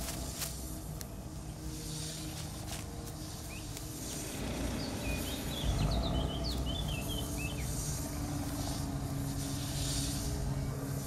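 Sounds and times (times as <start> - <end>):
low hum: 0.0 - 11.0
small birds chirping: 0.0 - 11.0
steady rushing background: 0.0 - 11.0.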